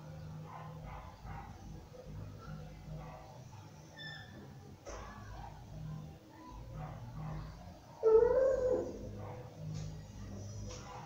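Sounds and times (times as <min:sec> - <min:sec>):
dog whimpering: 0:08.0 - 0:09.0.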